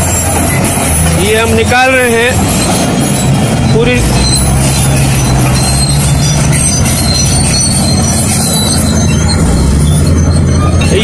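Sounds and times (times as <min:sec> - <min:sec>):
bulldozer diesel engines droning: 0:00.0 - 0:11.0
steel tracks squealing: 0:00.0 - 0:11.0.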